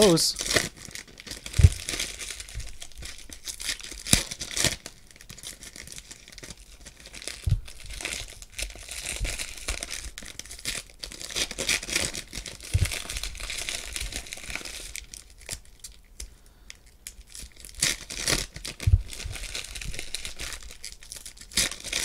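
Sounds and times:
foil wrappers crinkling and tearing: 0.0s - 22.0s
cards thumping softly: 7.5s - 8.0s.

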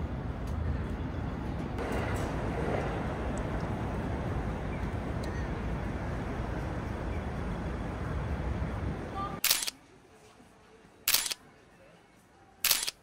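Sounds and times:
outdoor city ambience: 0.0s - 13.0s
camera shutter clicks: 9.4s - 9.8s, 11.1s - 11.4s, 12.6s - 13.0s.

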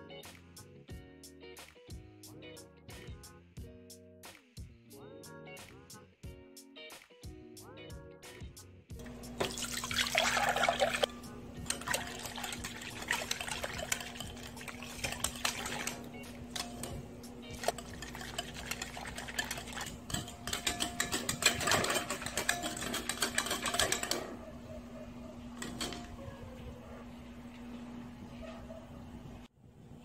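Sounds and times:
whisk beating batter in glass bowl: 9.1s - 24.5s, 25.6s - 26.2s
liquid pouring into glass bowl: 9.3s - 16.0s.

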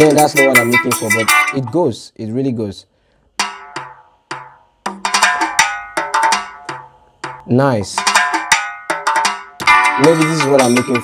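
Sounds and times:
latin pop percussion loop: 0.0s - 1.8s, 3.4s - 11.0s.

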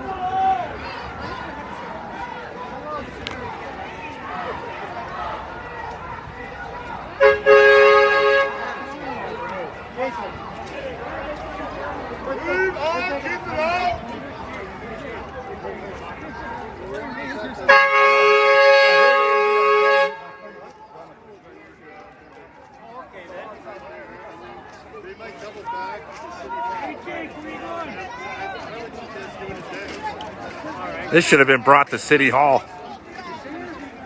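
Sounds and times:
crowd chatter: 0.0s - 34.0s
vehicle horn blast: 7.2s - 8.8s, 17.7s - 20.5s.

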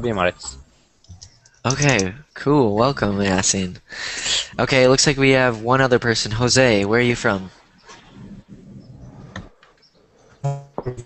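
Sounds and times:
faint call line background noise: 0.0s - 10.4s.

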